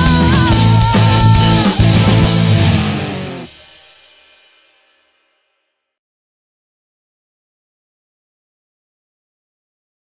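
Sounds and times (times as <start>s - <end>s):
rock band final chord ringing: 0.0s - 3.9s.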